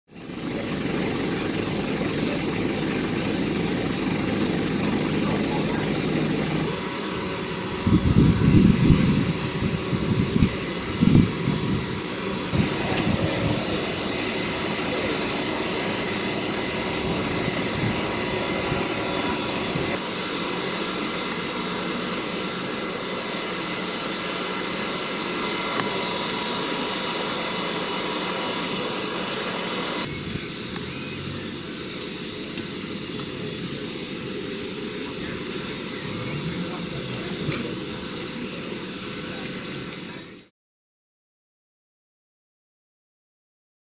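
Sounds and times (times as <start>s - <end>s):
fire engine idling: 0.1s - 8.2s, 9.2s - 40.5s
loud low rumbles: 36.0s - 38.0s.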